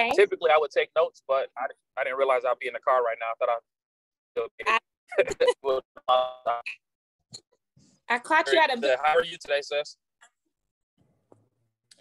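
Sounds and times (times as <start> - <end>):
man laughing over phone call: 5.2 - 6.6.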